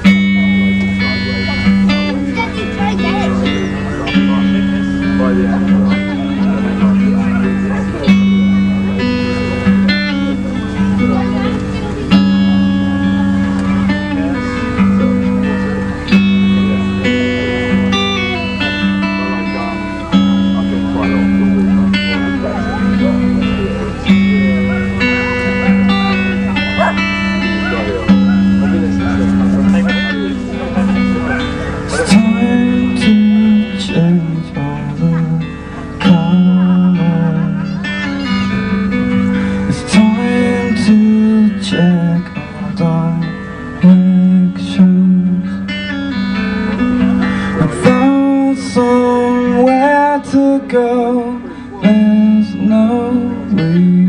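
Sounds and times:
acoustic guitar playing mellow song: 0:00.0 - 0:54.0
man singing: 0:00.0 - 0:54.0.

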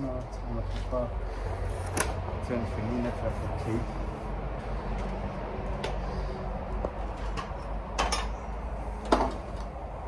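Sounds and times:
metal junk knocking and clinking: 0:07.3 - 0:08.4.

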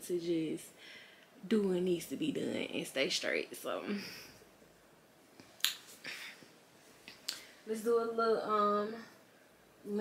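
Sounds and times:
soft hiss: 0:00.0 - 0:10.0
finger snap: 0:05.6 - 0:05.9.

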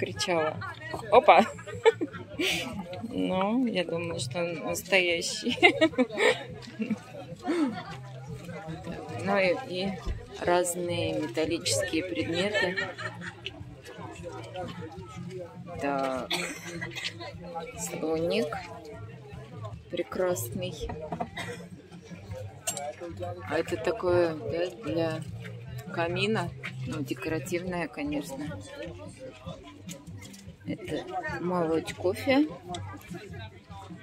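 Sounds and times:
people talking in background: 0:00.0 - 0:34.0.

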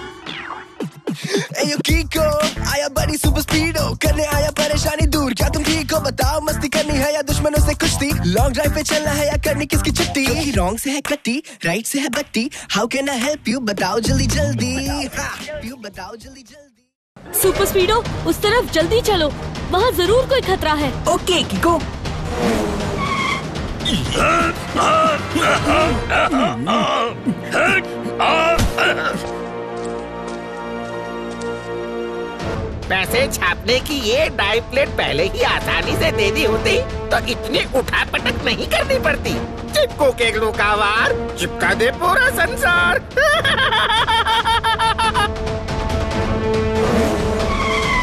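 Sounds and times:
background music: 0:00.0 - 0:16.4, 0:17.2 - 0:48.0
cartoon car rushing and skidding: 0:22.4 - 0:23.5, 0:46.8 - 0:48.0
tyre squeal: 0:23.0 - 0:24.0, 0:47.4 - 0:48.0
tyres squealing: 0:23.0 - 0:25.9, 0:47.4 - 0:48.0.

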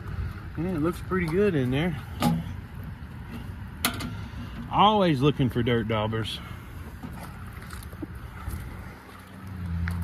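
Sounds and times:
steady low rumble: 0:00.0 - 0:04.8.

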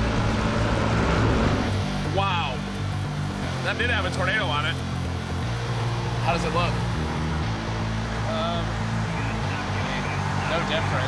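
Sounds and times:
road noise: 0:00.0 - 0:11.0
vehicle engine hum: 0:00.0 - 0:11.0.

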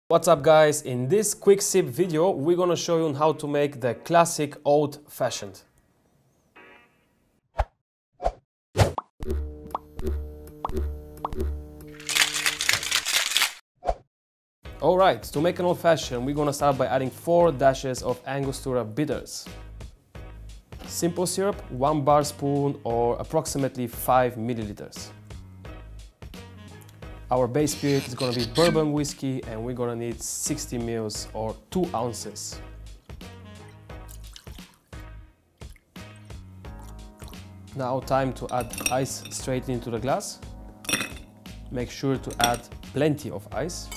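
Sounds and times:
background music: 0:00.1 - 0:05.1, 0:14.7 - 0:43.9.

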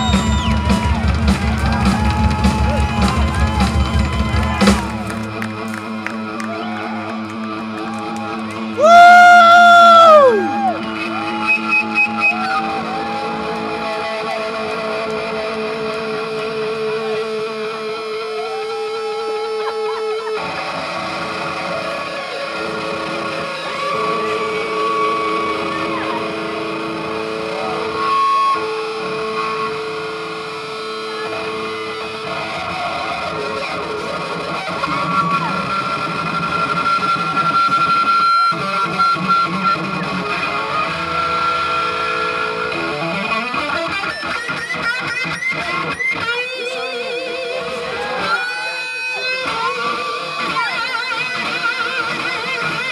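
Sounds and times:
live band music: 0:00.0 - 0:52.9
overdriven electric guitar lead: 0:00.0 - 0:52.9.

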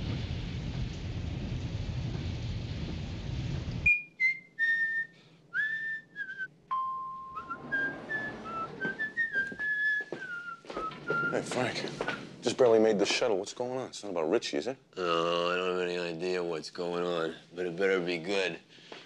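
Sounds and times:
rain: 0:00.0 - 0:03.9
thunder rumble: 0:00.0 - 0:04.0, 0:07.2 - 0:09.2
person whistling a slow tune: 0:03.9 - 0:11.4.

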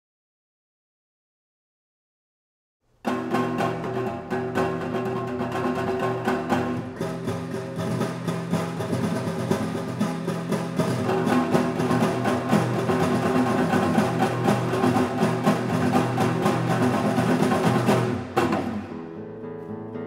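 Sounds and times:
classical guitar duo: 0:03.0 - 0:20.0.

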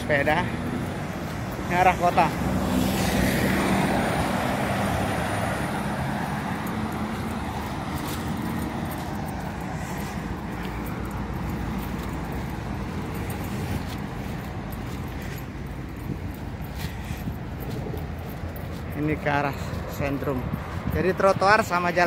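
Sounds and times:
road traffic: 0:00.0 - 0:22.0.

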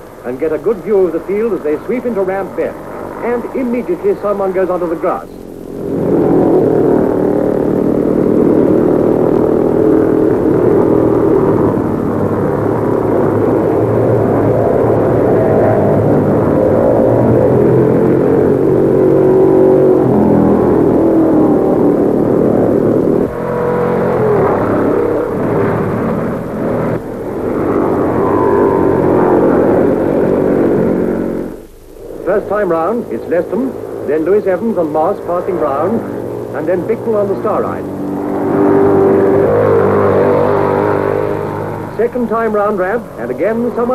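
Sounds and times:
racing car engines at high revs: 0:00.0 - 0:43.9.

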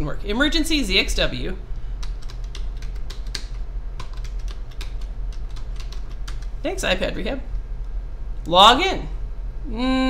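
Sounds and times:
steady low hum: 0:00.0 - 0:10.0
typing on computer keyboard: 0:02.0 - 0:06.6.

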